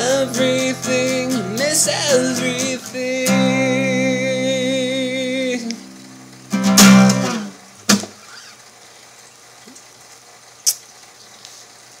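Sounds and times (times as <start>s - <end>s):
recording hiss and hum: 0.0s - 12.0s.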